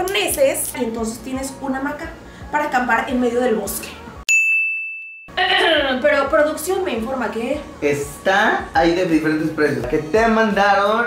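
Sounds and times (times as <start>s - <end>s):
woman speaking: 0.0s - 4.1s, 5.4s - 7.7s
bright bell ding: 4.3s - 5.4s.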